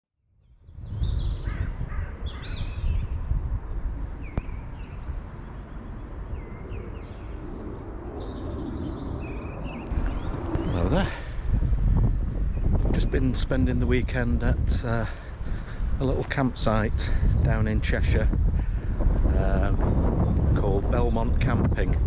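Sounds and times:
wind buffeting microphone: 0.5 - 22.0
birds chirping and calling: 0.6 - 22.0.

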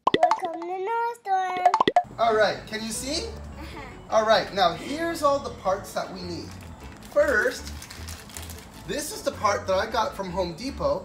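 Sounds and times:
sharp cartoon pops: 1.6 - 2.1.

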